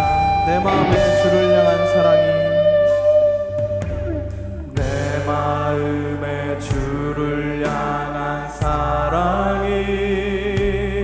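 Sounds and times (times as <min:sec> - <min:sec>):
bass and keyboard chords: 0:00.0 - 0:11.0
group singing worship song: 0:04.7 - 0:11.0.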